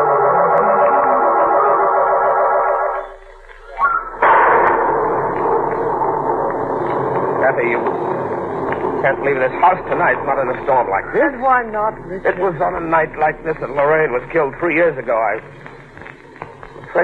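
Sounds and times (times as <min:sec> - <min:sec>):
wavering organ chords: 0:00.0 - 0:15.3.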